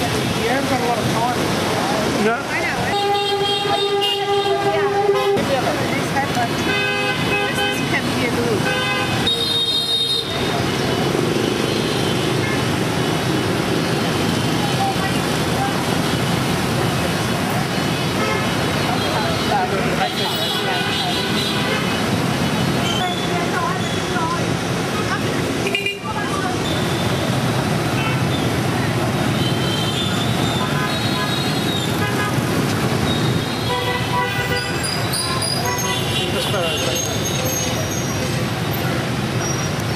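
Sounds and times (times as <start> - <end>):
street traffic noise: 0.0 - 39.9
vehicle horns honking: 2.8 - 5.6, 6.4 - 12.8, 17.9 - 24.2, 25.6 - 28.6, 29.3 - 38.1.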